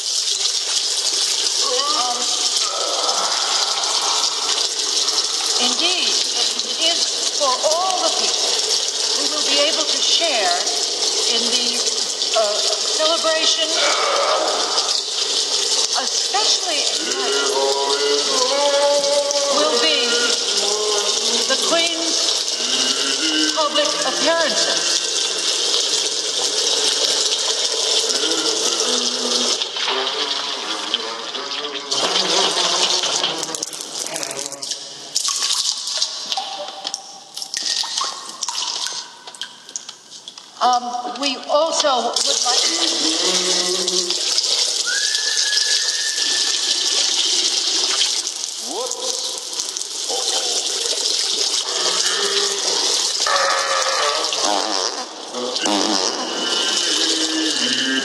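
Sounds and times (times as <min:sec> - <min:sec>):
man urinating into a urinal: 0:00.0 - 0:58.0
man's vocal sounds of relief: 0:01.6 - 0:05.6, 0:13.6 - 0:15.1, 0:17.0 - 0:25.5, 0:28.0 - 0:34.6, 0:42.6 - 0:44.4, 0:51.6 - 0:58.0.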